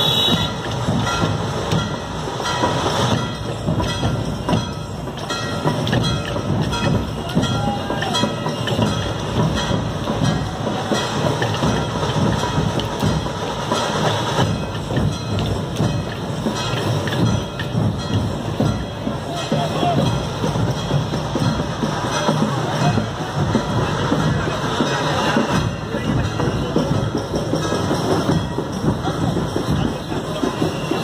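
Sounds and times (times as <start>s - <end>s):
fast rhythmic drumming: 0.0s - 31.0s
street procession din: 0.0s - 31.0s.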